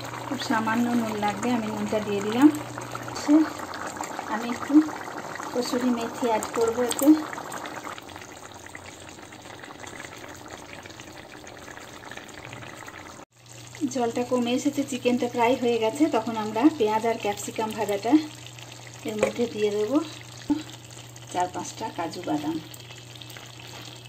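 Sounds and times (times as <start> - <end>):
gravy simmering bubbling: 0.0 - 24.0.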